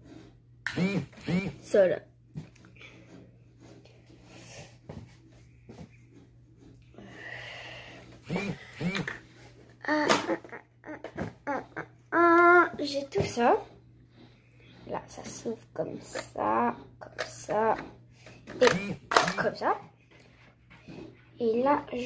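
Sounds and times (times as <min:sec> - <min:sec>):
breathy exhale: 0:07.0 - 0:08.1.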